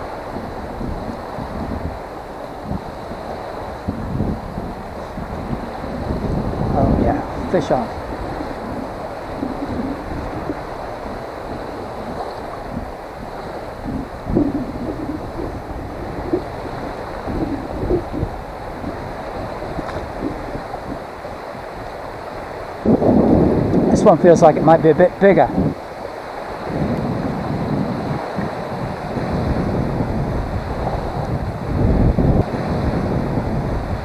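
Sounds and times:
small waves lapping: 0:00.0 - 0:31.8
wind rumbling on microphone: 0:00.0 - 0:34.0.

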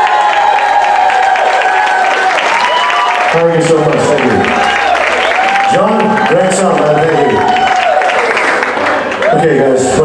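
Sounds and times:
audience applauding and cheering: 0:00.0 - 0:10.0.

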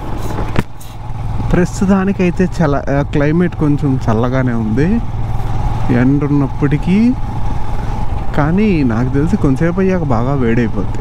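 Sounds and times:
motorcycle engine rumble: 0:00.0 - 0:11.0
man talking: 0:01.5 - 0:05.1, 0:05.9 - 0:07.2, 0:08.3 - 0:11.0.

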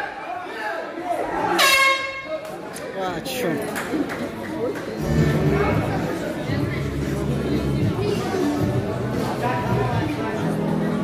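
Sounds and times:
loud horn blast: 0:01.6 - 0:02.3.

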